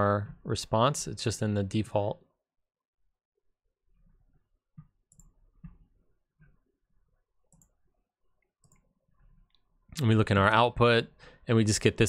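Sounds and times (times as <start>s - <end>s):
computer mouse clicks: 4.8s - 6.6s, 7.5s - 7.8s, 8.4s - 8.9s.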